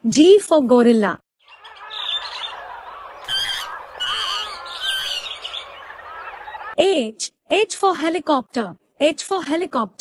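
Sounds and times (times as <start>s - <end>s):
birds chirping: 1.4s - 6.8s.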